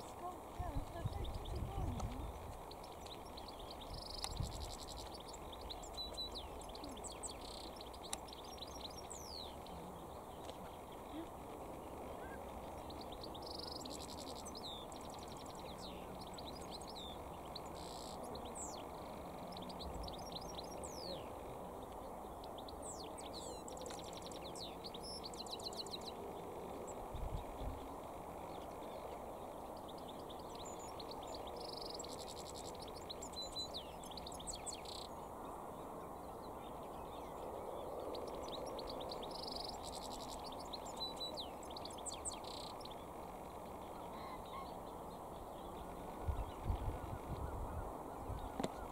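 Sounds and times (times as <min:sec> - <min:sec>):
goldfinch twittering and trills: 0:00.0 - 0:48.9
low background noise: 0:00.0 - 0:48.9.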